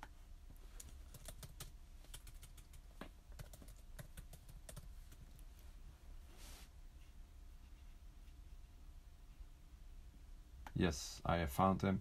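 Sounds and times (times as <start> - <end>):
typing on computer keyboard: 0.8 - 5.3.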